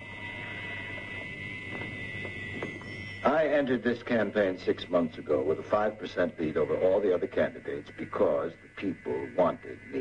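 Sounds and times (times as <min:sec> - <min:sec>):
background hiss: 0:00.0 - 0:10.0
high-pitched whine: 0:00.0 - 0:10.0.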